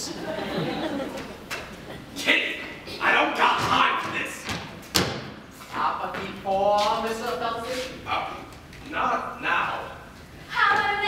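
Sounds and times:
person speaking: 5.6s - 11.0s.

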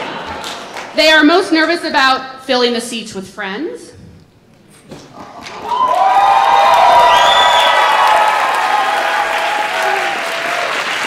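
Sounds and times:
audience applauding: 5.4s - 11.0s
crowd cheering and yelling: 5.5s - 11.0s
high whoop: 5.6s - 10.8s.

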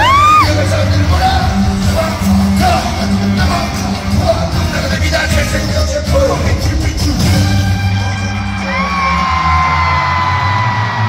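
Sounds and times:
live concert music with vocals: 0.0s - 11.0s.

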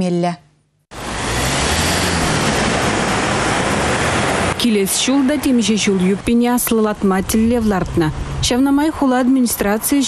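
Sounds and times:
cars driving past: 0.9s - 9.0s.

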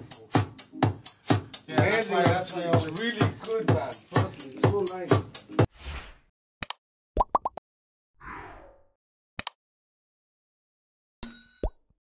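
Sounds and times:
ringing bell-like ding: 11.2s - 11.8s.

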